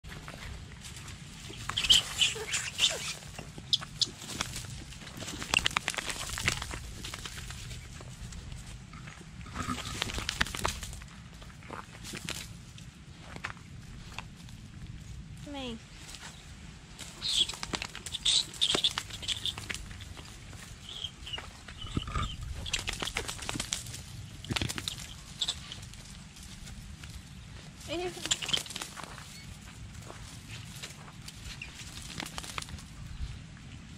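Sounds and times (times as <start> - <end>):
rat squealing: 1.4 - 4.6, 17.1 - 23.5, 24.5 - 26.0
scuffling on gravel: 19.1 - 32.8.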